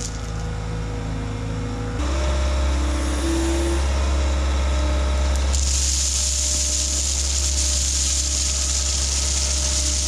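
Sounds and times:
diesel engine droning: 0.0 - 10.0
crushed stone pouring: 5.4 - 10.0.

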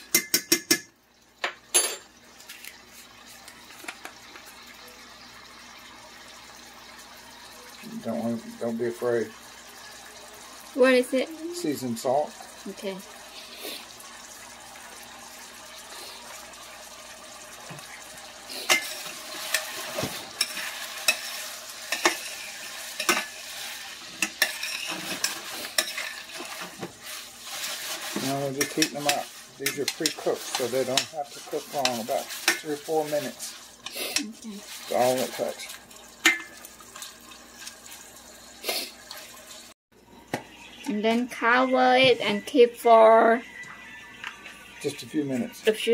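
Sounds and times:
utensil tapping on pan: 0.0 - 1.6
shrimp sizzling in a frying pan: 1.2 - 39.7
utensil scraping a pan: 18.5 - 38.0.

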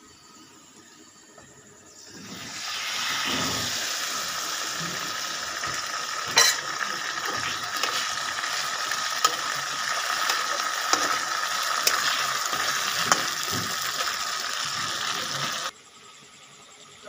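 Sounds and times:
food sizzling in hot oil: 2.0 - 15.7.

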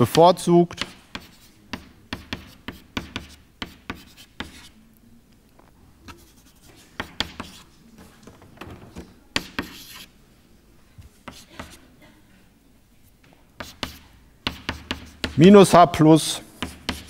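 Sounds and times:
chalk scratching on blackboard: 0.7 - 4.8, 6.0 - 7.8, 9.4 - 10.1, 11.2 - 11.9, 13.6 - 15.5, 16.4 - 17.0.

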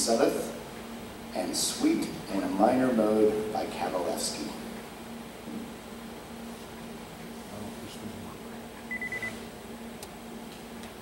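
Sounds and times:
short high electronic beeps: 8.9 - 9.4.

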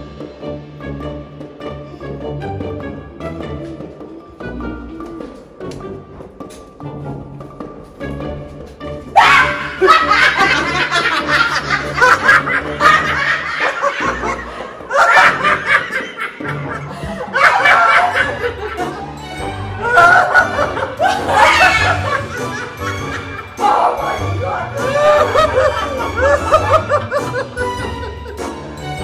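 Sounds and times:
background music: 0.0 - 29.0
women laughing hard: 9.2 - 28.7.

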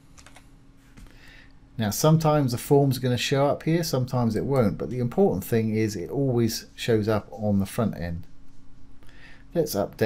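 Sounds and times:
steady low hum: 0.0 - 10.0
keyboard keys clicking: 0.2 - 0.4.

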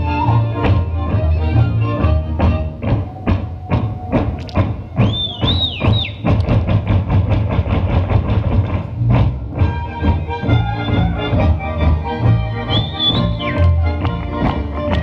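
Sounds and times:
folk band music: 0.0 - 15.0
wooden clogs striking stage floor: 2.3 - 10.2.

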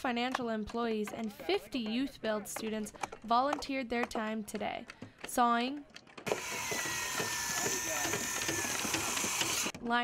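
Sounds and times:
circular saw cutting wood: 6.3 - 9.8.

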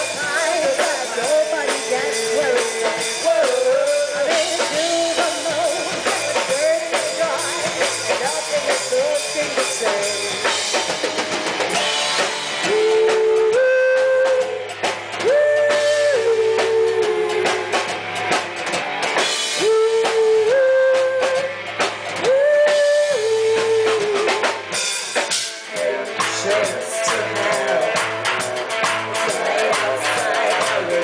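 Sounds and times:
live rock band: 0.0 - 31.0.

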